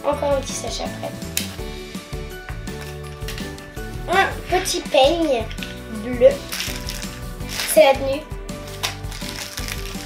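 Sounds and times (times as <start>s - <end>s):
background music: 0.0s - 10.0s
sharp crackle: 6.4s - 7.9s, 8.7s - 10.0s
plastic wrapper crinkling: 6.4s - 8.0s, 8.6s - 10.0s.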